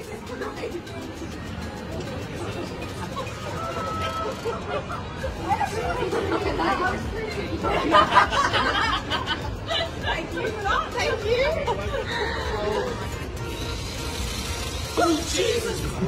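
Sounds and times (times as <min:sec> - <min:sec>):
street chatter: 0:00.0 - 0:16.0
people laughing: 0:02.5 - 0:13.3.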